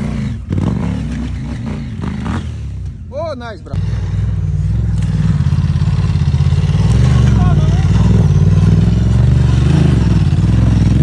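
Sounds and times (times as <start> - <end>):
motorcycle engine revving: 0.0 - 3.1, 3.8 - 11.0.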